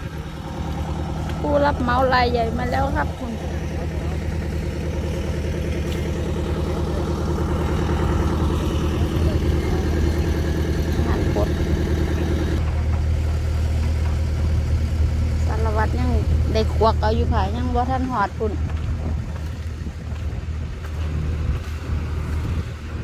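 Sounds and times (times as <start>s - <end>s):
heavy engine running: 0.0s - 23.0s.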